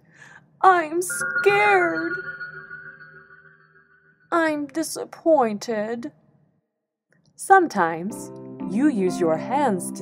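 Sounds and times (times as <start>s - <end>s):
electronic tone chord: 1.1s - 4.0s.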